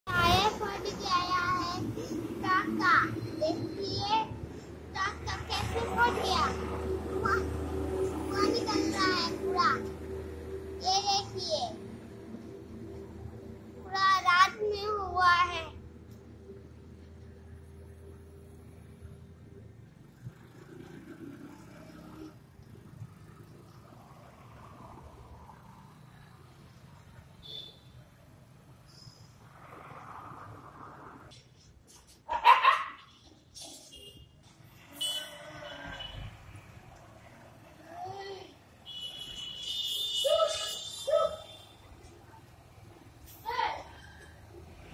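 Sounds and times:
child's high-pitched voice: 0.1 - 10.0, 10.8 - 11.9, 13.8 - 15.8, 37.8 - 38.6, 43.4 - 44.0
dog barking: 32.3 - 33.0.

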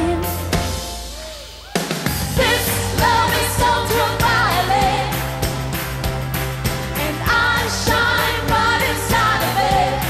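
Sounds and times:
full band backing: 0.0 - 10.0.

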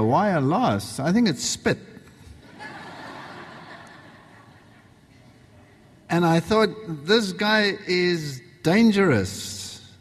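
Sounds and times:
audience laughter in a large hall: 2.4 - 5.4.

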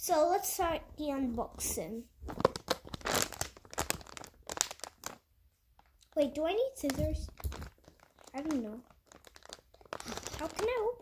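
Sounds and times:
plastic bag crinkling: 1.4 - 11.0.

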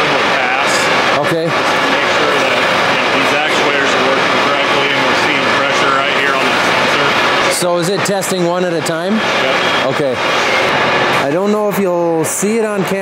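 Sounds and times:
tractor diesel engine running: 0.0 - 11.3.

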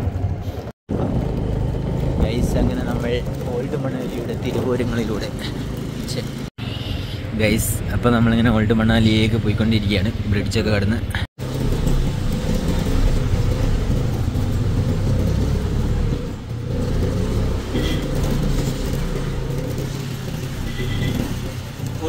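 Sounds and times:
vehicle engine rumble: 0.0 - 22.0.

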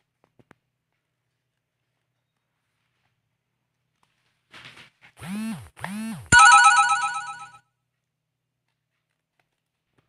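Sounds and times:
electronic ringtone jingle: 6.3 - 7.5.

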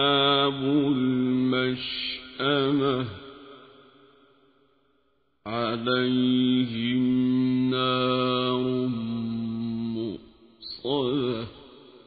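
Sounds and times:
man chanting in long notes: 0.0 - 3.2, 5.5 - 11.6.

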